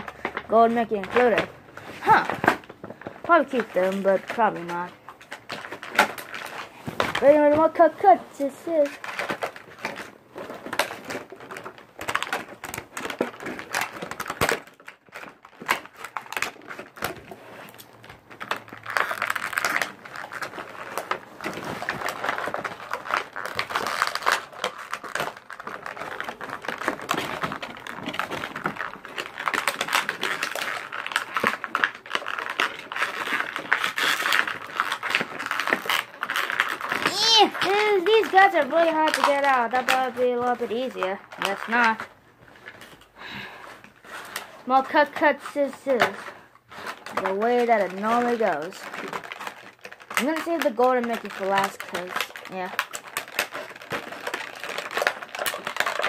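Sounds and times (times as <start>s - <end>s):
plastic packaging crinkling: 0.0s - 56.0s.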